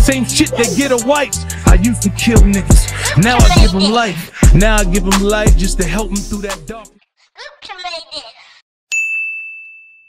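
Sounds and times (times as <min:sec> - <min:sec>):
person's voice: 0:00.0 - 0:06.8
bright ding: 0:08.9 - 0:10.0.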